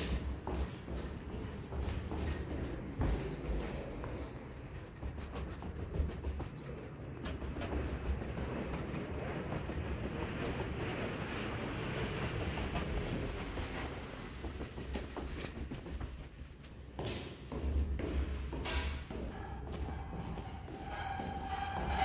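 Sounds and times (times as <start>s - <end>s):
footsteps on concrete stairs: 0.0s - 22.0s
steady rumbling noise: 0.0s - 22.0s.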